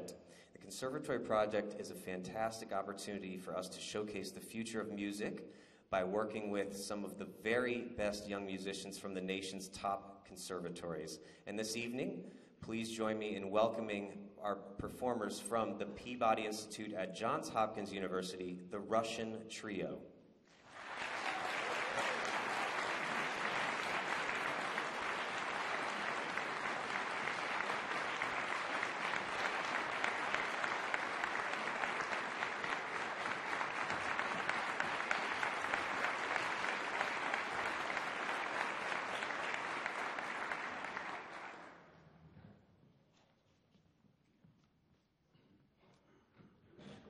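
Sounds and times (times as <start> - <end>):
audience applauding: 20.6 - 41.8.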